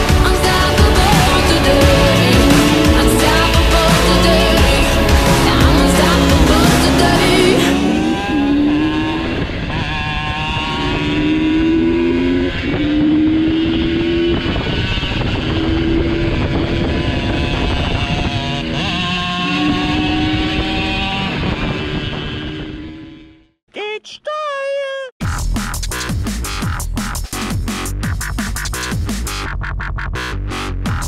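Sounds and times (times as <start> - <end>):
motorcycle engine revving: 0.0 - 23.6.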